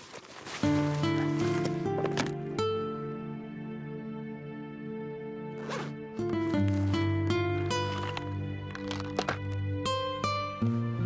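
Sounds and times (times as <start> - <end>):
soft background music: 0.4 - 11.0
zipper pulled: 5.5 - 9.4.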